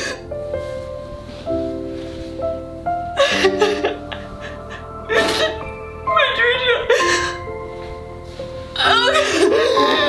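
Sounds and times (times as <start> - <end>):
background music of held notes: 0.0 - 10.0
woman sobbing: 3.2 - 7.5, 8.8 - 10.0.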